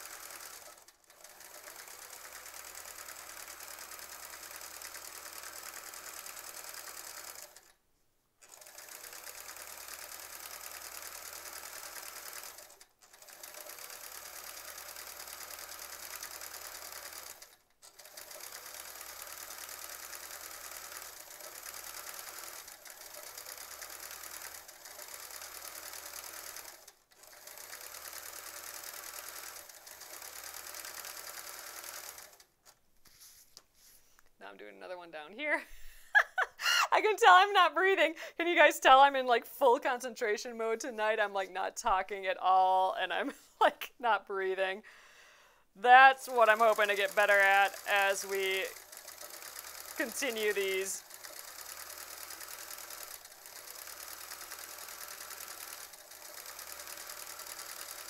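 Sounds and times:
sewing machine stitching: 0.0s - 7.8s, 8.4s - 33.4s, 46.0s - 58.0s.

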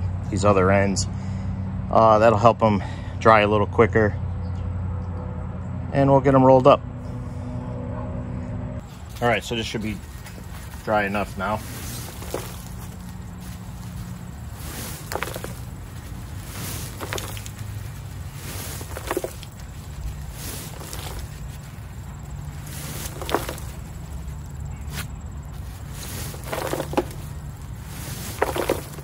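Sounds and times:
dry leaves crackling: 8.8s - 29.0s
fabric rustling scrape: 8.8s - 29.0s.

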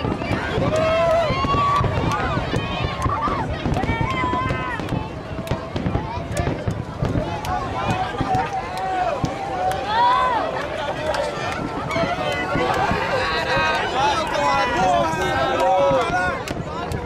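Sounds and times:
fireworks bangs and thuds: 0.0s - 10.2s, 11.1s - 17.0s
spectators talking and calling out: 0.0s - 17.0s.

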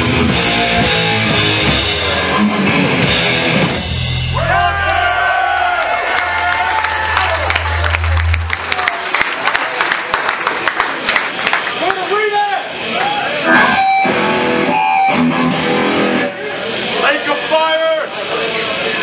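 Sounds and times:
bass and guitar ringing: 0.0s - 5.0s, 6.2s - 9.1s, 13.4s - 16.9s
thrash metal band: 0.0s - 9.0s.

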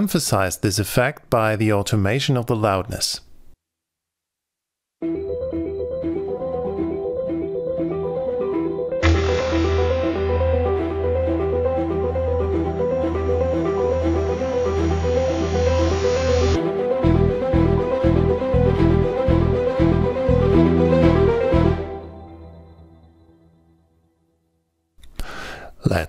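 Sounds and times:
bright noisy synth impact: 9.0s - 11.7s
arpeggiated synth pad: 9.0s - 16.6s
deep sustained synth bass: 9.0s - 16.6s, 17.6s - 22.6s
pulsing low synth pattern: 9.0s - 16.6s.

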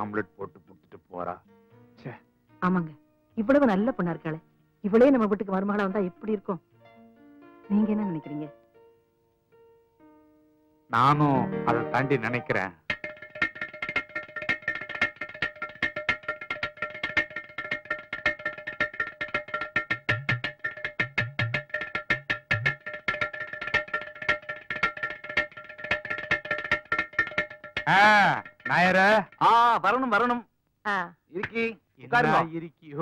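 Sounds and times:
clay pot drum played fast: 11.7s - 30.3s, 31.4s - 32.5s.

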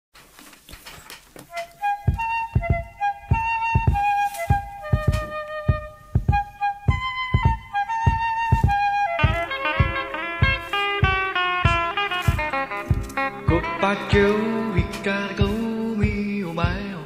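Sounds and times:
melody of held high notes: 1.5s - 17.0s
steady drum beat: 2.0s - 17.0s.

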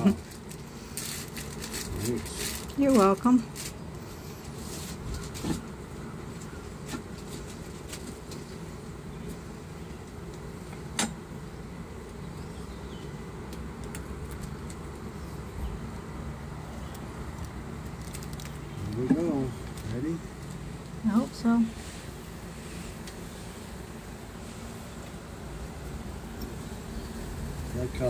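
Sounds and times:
honey bees humming: 0.0s - 28.0s.

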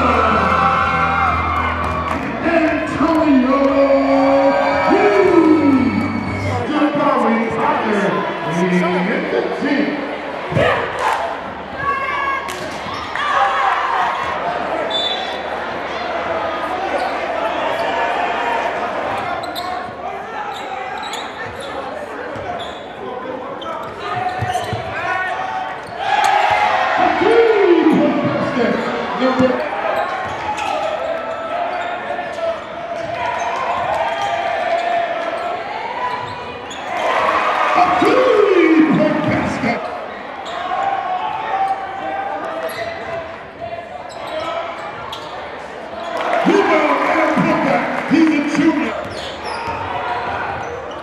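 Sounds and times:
crowd voices and shouts: 0.0s - 51.0s.

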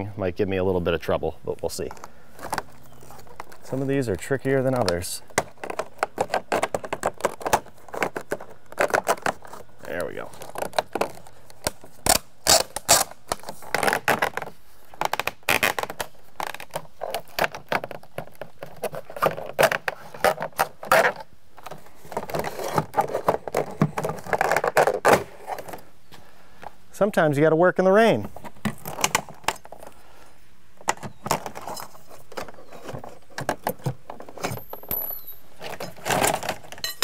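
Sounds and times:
scraping and rubbing: 1.8s - 14.6s, 15.5s - 25.9s
plastic siding clicking and snapping: 4.7s - 9.7s, 28.4s - 29.9s.

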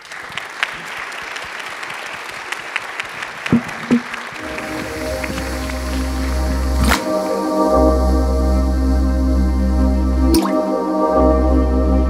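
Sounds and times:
synth chord over bass: 4.4s - 12.0s.

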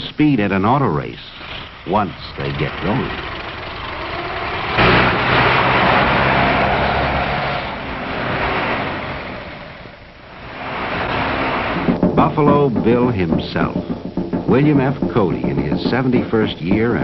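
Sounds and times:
racing car engines: 1.4s - 12.0s.

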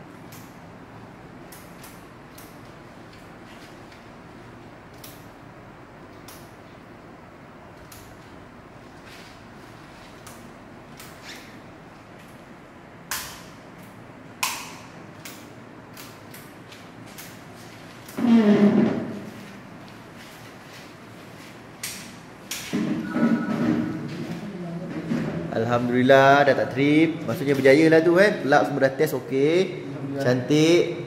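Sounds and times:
circuit breakers clicking: 4.8s - 5.4s, 6.1s - 6.6s, 13.0s - 18.2s
circuit breakers snapping: 13.0s - 18.3s.

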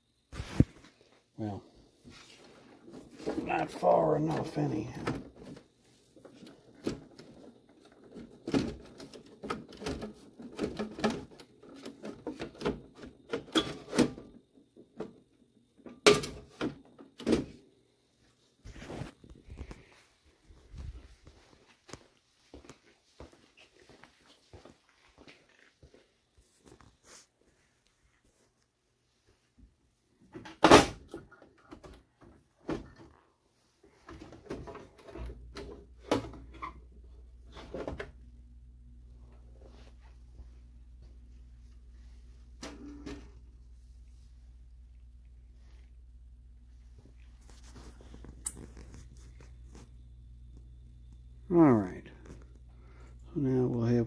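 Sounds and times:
low steady hum: 31.2s - 54.0s.

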